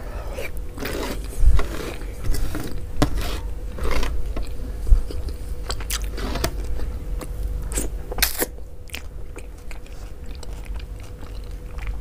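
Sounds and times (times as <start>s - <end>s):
close wet chewing: 4.4s - 12.0s.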